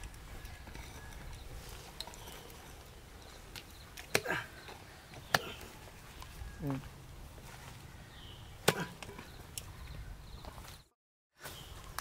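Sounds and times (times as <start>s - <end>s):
soil scraping: 0.0s - 8.0s.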